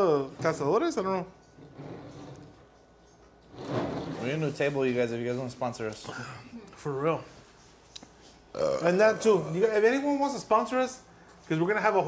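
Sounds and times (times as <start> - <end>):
man talking: 4.2 - 7.4, 8.6 - 12.0.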